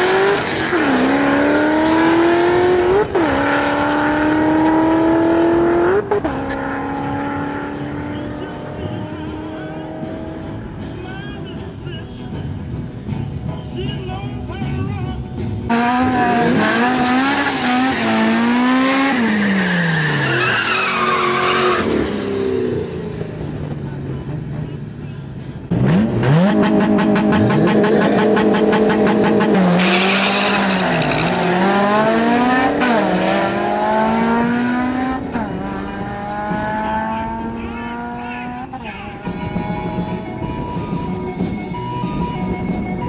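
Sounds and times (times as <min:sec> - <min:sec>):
car engine revving: 0:00.0 - 0:11.0, 0:15.7 - 0:24.7, 0:25.7 - 0:41.5
tyre squeal: 0:18.9 - 0:22.2, 0:29.8 - 0:31.6.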